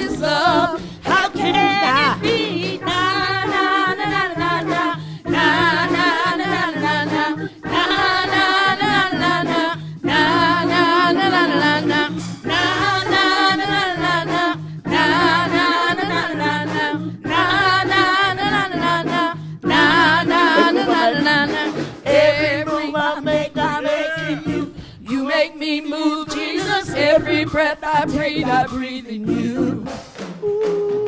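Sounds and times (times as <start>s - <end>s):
steady low tones: 0.0s - 25.2s
congregation singing worship song: 0.0s - 31.0s.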